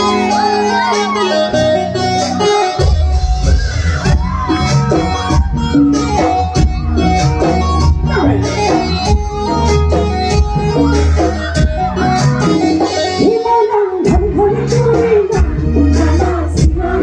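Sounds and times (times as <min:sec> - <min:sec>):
heavy bass line: 0:00.0 - 0:13.3
live band music: 0:00.0 - 0:17.0.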